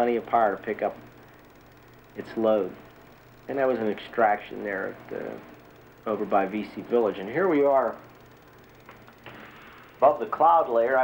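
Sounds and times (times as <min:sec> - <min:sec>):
faint background hum and hiss: 0:00.0 - 0:11.0.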